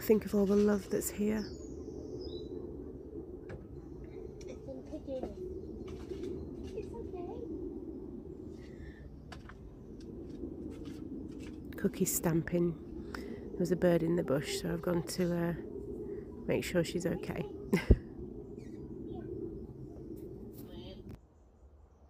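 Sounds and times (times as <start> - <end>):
steady low hum: 0.0 - 22.0
faint bird chirps: 1.3 - 7.0, 18.4 - 21.0.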